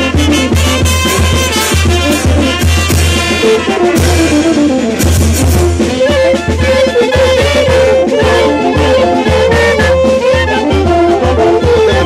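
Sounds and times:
military brass band playing: 0:00.0 - 0:12.0.

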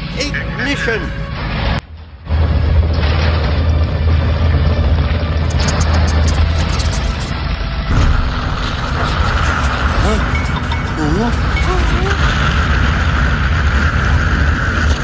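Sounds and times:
orchestral film score: 0:00.0 - 0:13.0
rocket engines rumbling: 0:00.0 - 0:15.0.

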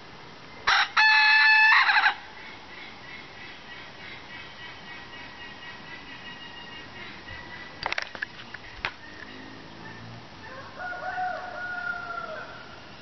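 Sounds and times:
rooster crowing: 0:00.7 - 0:02.2, 0:09.0 - 0:12.8.

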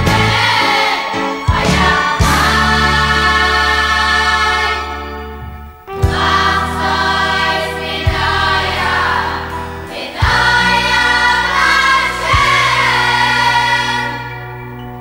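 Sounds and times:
boys' choir singing: 0:00.0 - 0:05.3, 0:06.0 - 0:14.5
instrumental backing: 0:00.0 - 0:15.0.

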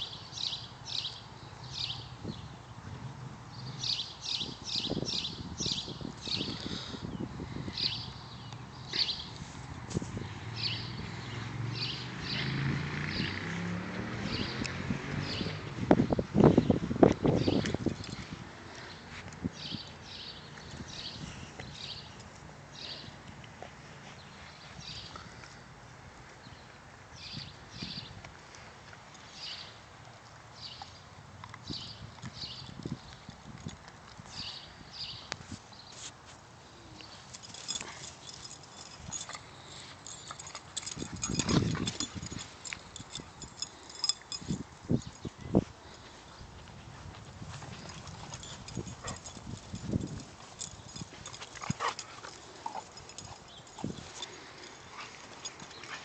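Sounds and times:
dog gnawing on wooden stick: 0:37.0 - 0:45.3, 0:47.4 - 0:56.0.

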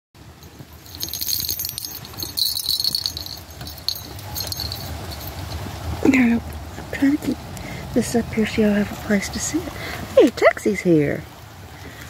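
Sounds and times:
low rustling: 0:00.3 - 0:06.0
small bell jingling: 0:00.4 - 0:05.8.

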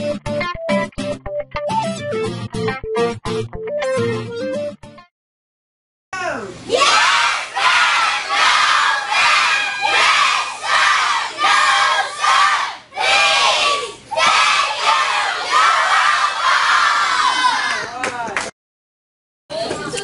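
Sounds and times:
children shouting in unison: 0:06.7 - 0:17.8.

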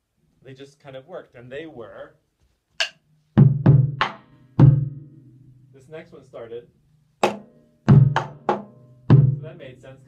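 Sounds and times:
taiko drum hits: 0:03.4 - 0:05.1, 0:07.2 - 0:09.4.

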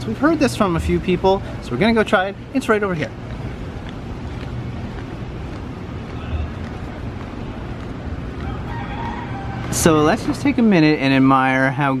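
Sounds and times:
street background noise: 0:00.0 - 0:12.0
rooster crowing faintly: 0:08.4 - 0:10.3.

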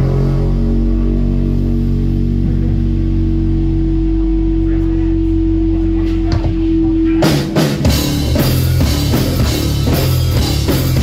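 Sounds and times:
sustained amplified guitar chord: 0:00.0 - 0:11.0.

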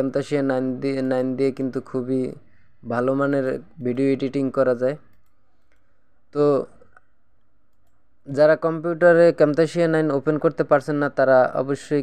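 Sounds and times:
person speaking: 0:00.0 - 0:12.0
computer mouse click: 0:05.1 - 0:06.0, 0:06.8 - 0:08.0.

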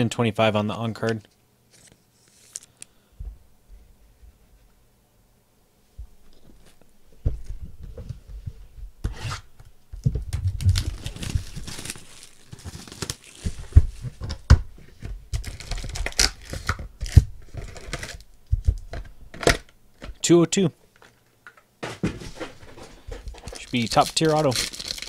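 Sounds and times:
plastic wrap tearing and crinkling: 0:10.5 - 0:13.8, 0:15.4 - 0:18.3, 0:23.3 - 0:25.0
foil packs handled: 0:10.5 - 0:14.1, 0:15.4 - 0:18.2, 0:22.4 - 0:25.0.

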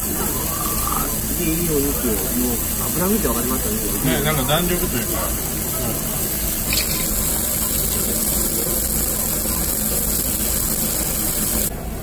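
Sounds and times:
meat sizzling on a grill: 0:00.0 - 0:11.7.

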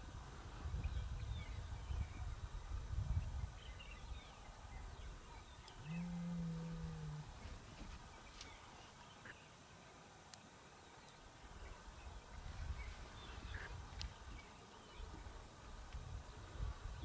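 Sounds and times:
low drawn-out animal call: 0:05.8 - 0:07.4.

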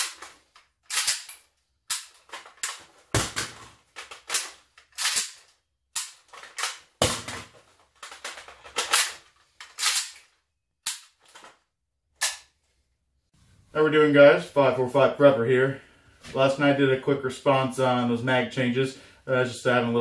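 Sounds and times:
metal magazine clacks and rattles: 0:00.0 - 0:02.9, 0:03.9 - 0:06.9, 0:08.0 - 0:10.3
sharp metallic snaps: 0:12.2 - 0:12.5.

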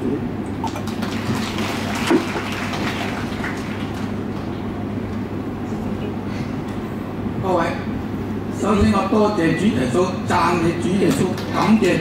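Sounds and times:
audience applauding: 0:00.6 - 0:04.6.

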